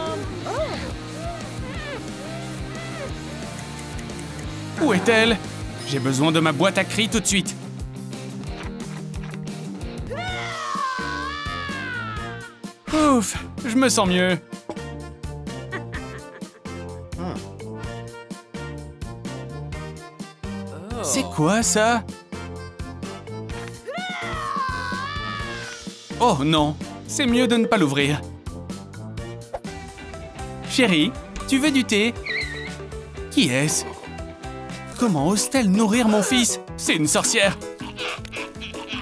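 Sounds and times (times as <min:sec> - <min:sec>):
background music with bass: 0:00.0 - 0:39.0
woman screaming into a jar: 0:10.1 - 0:12.5, 0:23.9 - 0:25.8.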